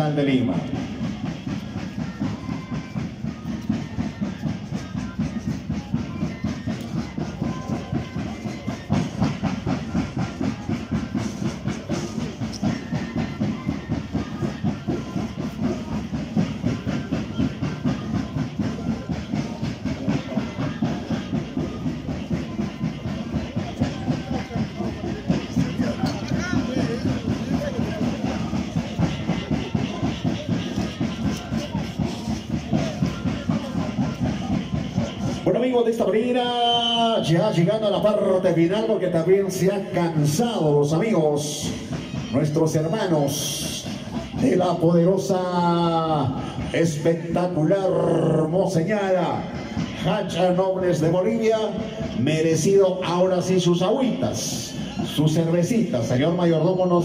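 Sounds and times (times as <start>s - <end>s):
fast drum beat: 0.0s - 57.0s.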